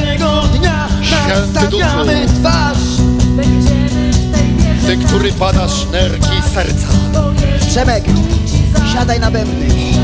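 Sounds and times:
worship band playing: 0:00.0 - 0:10.0
man speaking into a microphone: 0:01.1 - 0:02.6.

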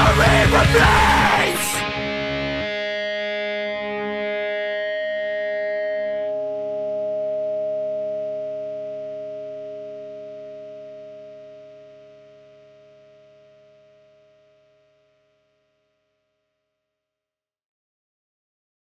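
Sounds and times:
distorted electric guitar chord ringing: 0:00.0 - 0:15.6.

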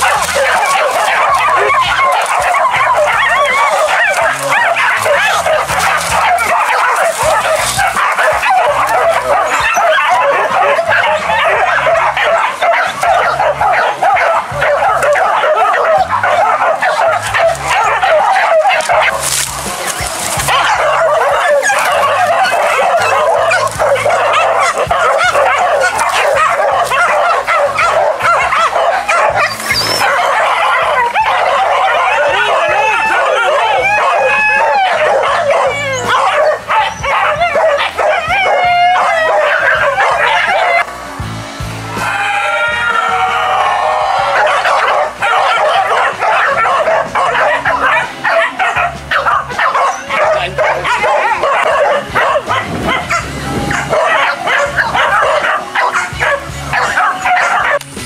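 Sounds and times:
background music: 0:00.0 - 0:58.0
dogs barking and yelping: 0:00.0 - 0:58.0.

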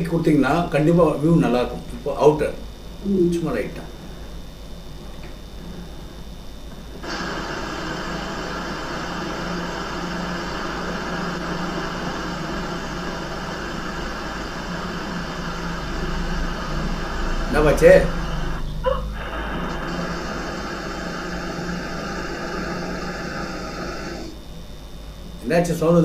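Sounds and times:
low steady hum: 0:00.0 - 0:26.0
machine whirring: 0:02.8 - 0:26.0.

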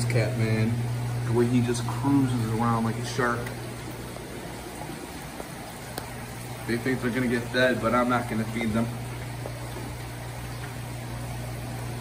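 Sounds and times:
running water rushing: 0:00.0 - 0:12.0.

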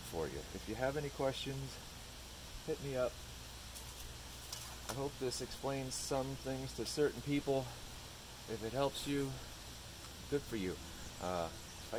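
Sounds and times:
man talking: 0:00.0 - 0:01.9, 0:02.6 - 0:03.2, 0:04.9 - 0:09.6, 0:10.2 - 0:11.9
faint hiss: 0:00.0 - 0:11.9
steady low hum: 0:00.0 - 0:11.9
faint light ticks: 0:10.0 - 0:10.2.

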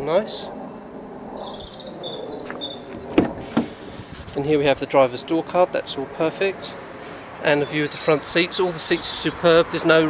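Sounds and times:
bird chirping: 0:00.5 - 0:05.1, 0:07.4 - 0:09.9
sharp knocks: 0:02.5 - 0:03.8.

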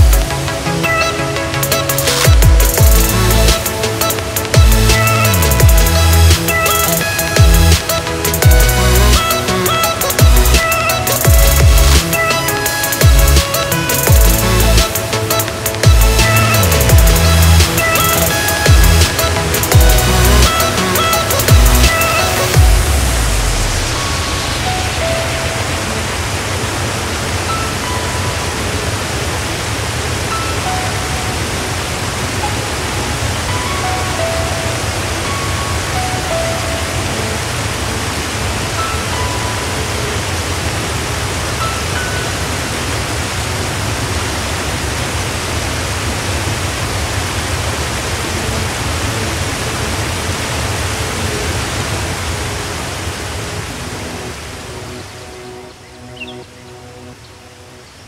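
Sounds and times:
whitewater rapids rushing: 0:00.0 - 0:55.2.

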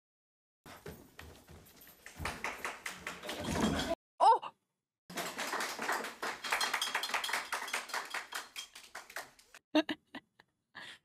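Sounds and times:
people clapping: 0:02.0 - 0:03.7, 0:05.1 - 0:09.6.

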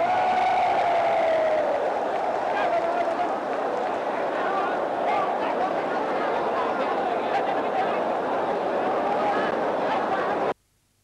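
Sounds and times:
crowd noise: 0:00.0 - 0:10.6.

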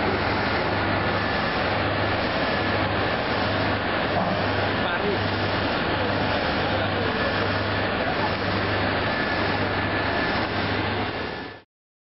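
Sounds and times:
loud rushing noise: 0:00.0 - 0:11.6.

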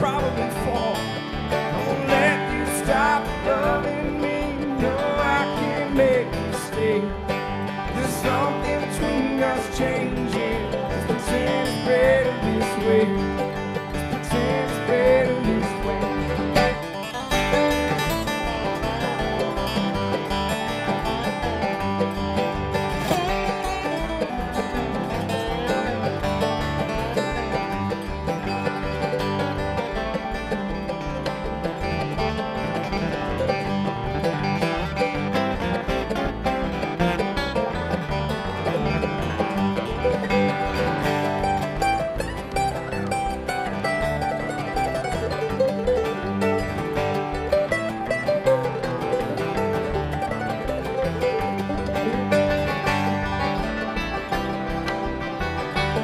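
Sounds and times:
acoustic guitar: 0:00.0 - 0:56.0
banjo: 0:00.0 - 0:56.0
mandolin: 0:00.0 - 0:56.0
upright bass plucking: 0:00.0 - 0:56.0.

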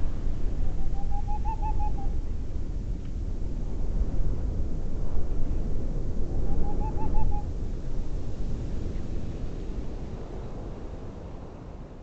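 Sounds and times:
low wind rumble: 0:00.0 - 0:12.0
bird hooting: 0:00.8 - 0:02.1, 0:06.7 - 0:07.4.

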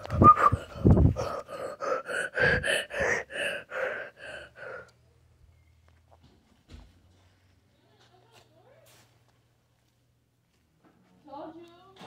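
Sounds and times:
child gasping rhythmically: 0:00.0 - 0:05.0.

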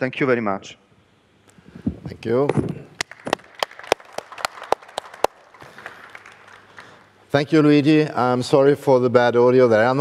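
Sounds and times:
faint room hiss: 0:00.0 - 0:10.0
sparse hand-clapping: 0:03.0 - 0:07.1.

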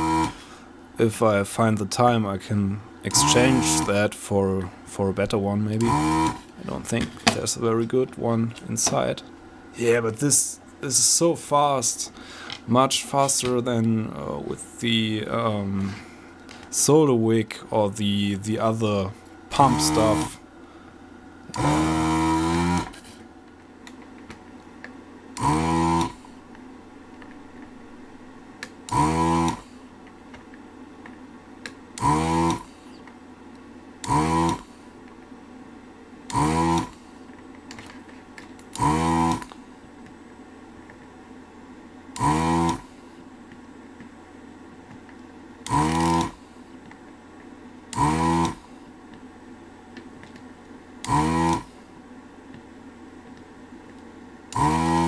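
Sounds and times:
vacuum pump buzzing: 0:00.0 - 0:00.7, 0:02.9 - 0:04.3, 0:05.0 - 0:07.7, 0:17.9 - 0:35.4, 0:36.1 - 0:55.0
cooling fan humming: 0:00.0 - 0:55.0.

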